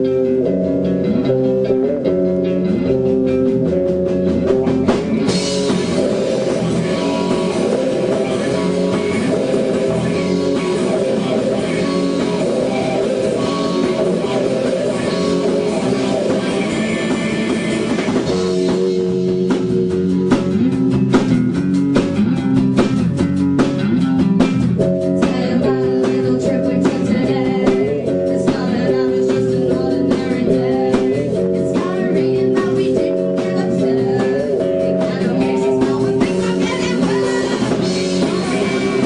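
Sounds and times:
drum kit: 0.0s - 39.0s
rock band playing live: 0.0s - 39.0s
woman singing: 5.7s - 16.7s, 25.0s - 39.0s.

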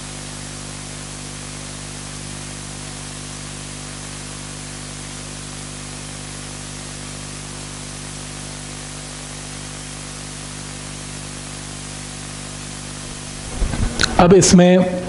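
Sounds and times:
steady recording hiss: 0.0s - 15.0s
low hum: 12.7s - 15.0s.

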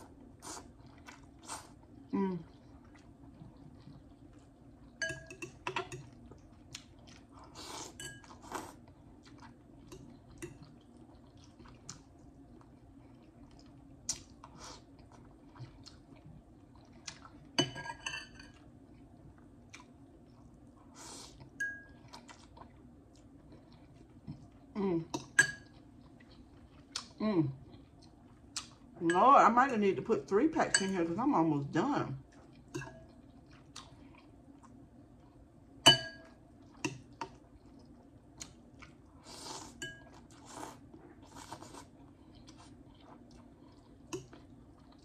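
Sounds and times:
fork clinking on glass bowl: 5.0s - 6.0s
noodles chewed and slurped: 18.8s - 24.7s, 36.6s - 45.0s.

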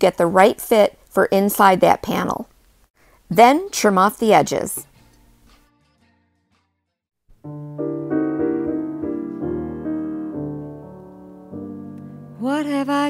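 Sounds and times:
piano chords: 7.4s - 13.0s.

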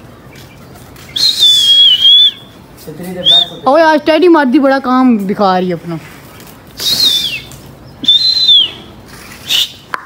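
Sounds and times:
person whistling shrilly: 1.2s - 2.5s, 3.2s - 3.6s, 6.8s - 9.9s.

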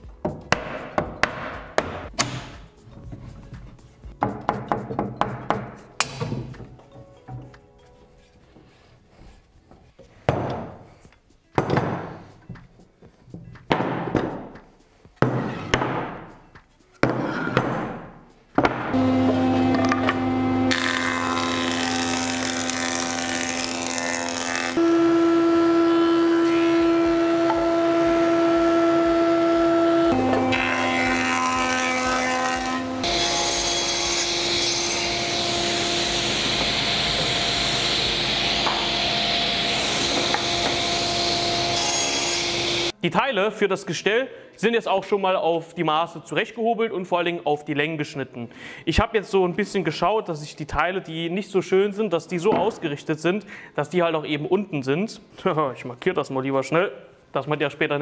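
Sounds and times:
wooden mallet striking wood: 0.2s - 2.6s, 4.2s - 6.6s, 10.3s - 10.8s, 11.6s - 12.2s, 13.7s - 14.6s, 15.2s - 16.3s, 17.0s - 19.0s, 38.6s - 38.9s, 40.1s - 40.8s
thickness planer running: 19.0s - 42.9s.

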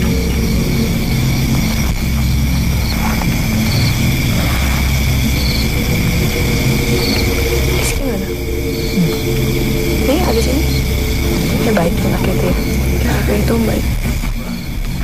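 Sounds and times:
deep hum: 0.0s - 15.0s
droning music of held tones: 0.0s - 15.0s.

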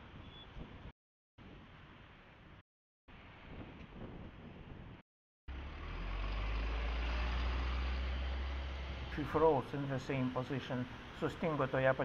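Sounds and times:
vehicle engines: 5.5s - 12.0s.

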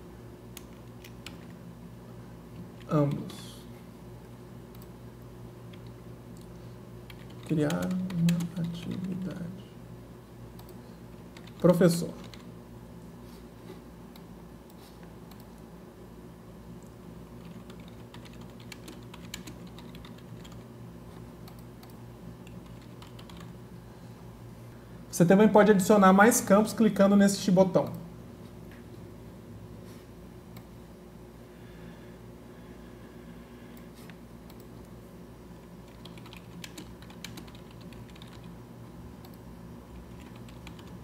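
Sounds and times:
low steady hum: 0.0s - 41.0s
computer keyboard typing: 0.6s - 1.6s, 7.1s - 9.5s, 10.6s - 12.5s, 17.4s - 20.7s, 21.4s - 23.6s, 35.8s - 38.6s, 39.2s - 41.0s.

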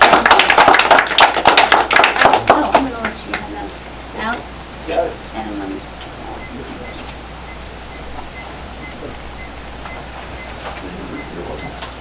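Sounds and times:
small group applauding: 0.0s - 3.6s.

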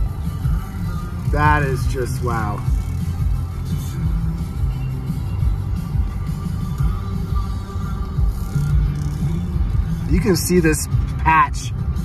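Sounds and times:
music on car radio: 0.0s - 12.0s
road and engine rumble: 0.0s - 12.0s.

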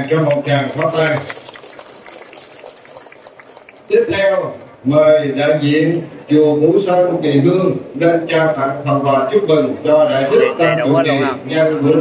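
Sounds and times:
audience applauding: 0.0s - 4.8s.

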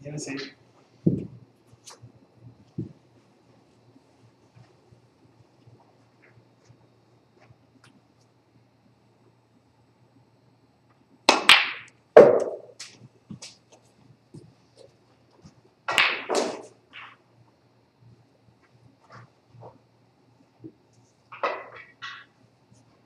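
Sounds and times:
snooker balls clicking: 10.9s - 17.3s, 20.6s - 22.4s
cue striking cue ball: 11.3s - 12.8s, 15.9s - 17.2s, 21.4s - 22.3s.

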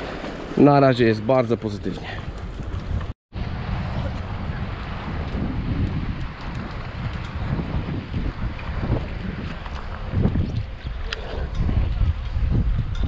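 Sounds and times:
wind buffeting microphone: 1.6s - 13.0s.

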